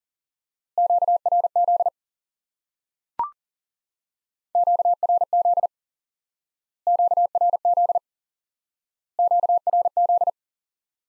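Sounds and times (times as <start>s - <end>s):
morse code beeps: 0.8s - 1.9s, 4.6s - 5.7s, 6.9s - 8.0s, 9.2s - 10.3s.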